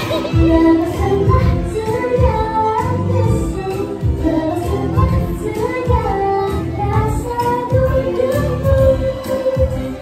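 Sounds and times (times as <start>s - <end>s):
amplified live pop music: 0.0s - 10.0s
girl singing: 0.0s - 10.0s.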